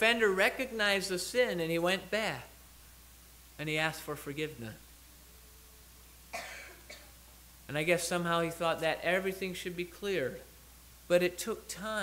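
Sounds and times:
steady low hum: 0:00.0 - 0:12.0
person coughing: 0:06.3 - 0:07.2.

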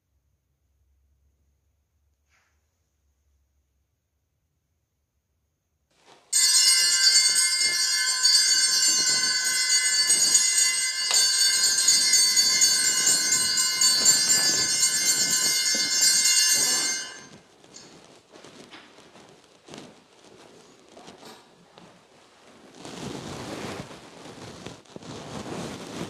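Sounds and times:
high-pitched bell-like ringing: 0:06.4 - 0:17.9.

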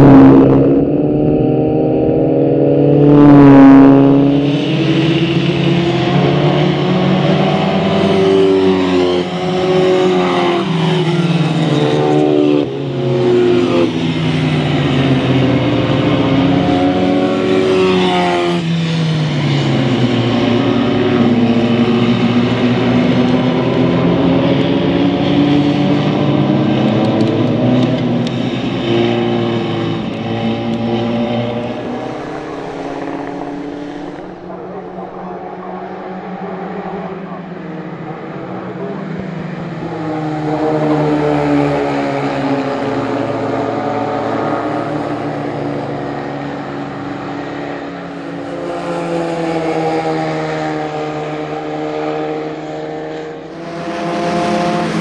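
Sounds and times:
race cars passing: 0:00.0 - 0:55.0.

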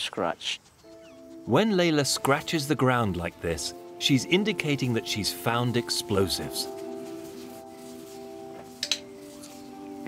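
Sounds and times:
background music with held notes: 0:00.8 - 0:10.0.

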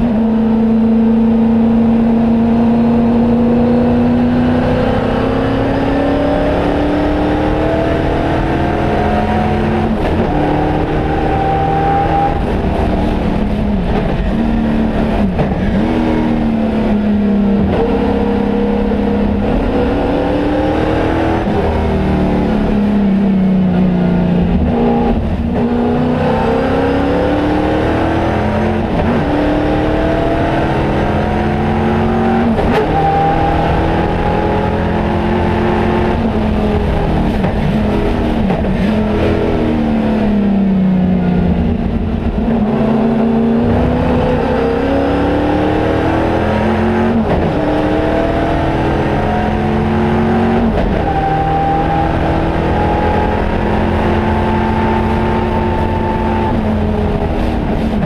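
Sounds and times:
race car engine revving through gears: 0:00.0 - 0:58.0.

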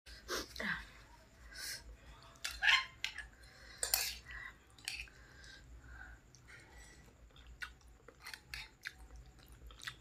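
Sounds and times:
chewing noodles close up: 0:07.3 - 0:10.0.

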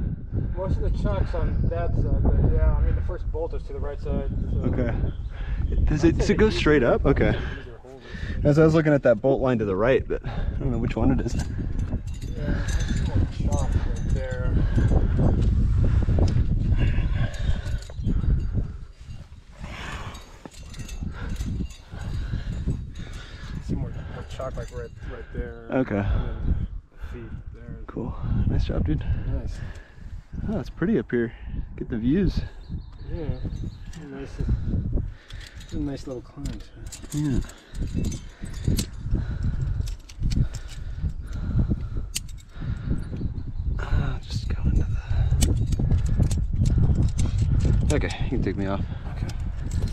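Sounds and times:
wind buffeting microphone: 0:00.0 - 0:49.9
metal climbing gear clinking: 0:10.4 - 0:25.3, 0:32.6 - 0:49.9
carabiners knocking together: 0:11.0 - 0:15.5, 0:16.2 - 0:18.8, 0:19.8 - 0:25.1, 0:33.6 - 0:43.2, 0:44.3 - 0:49.9.

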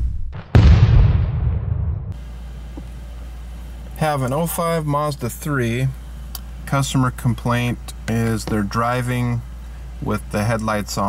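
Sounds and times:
cinematic boom with deep rumble: 0:00.0 - 0:02.2
steady low hum: 0:00.6 - 0:11.0.

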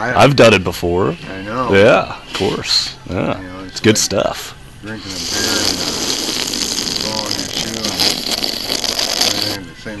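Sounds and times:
man talking: 0:00.0 - 0:06.1, 0:06.9 - 0:10.0
steady hiss: 0:05.0 - 0:09.6.

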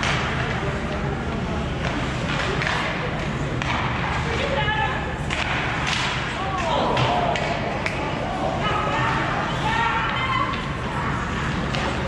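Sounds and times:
hockey sticks cracking on puck: 0:00.0 - 0:04.6, 0:05.2 - 0:08.2.

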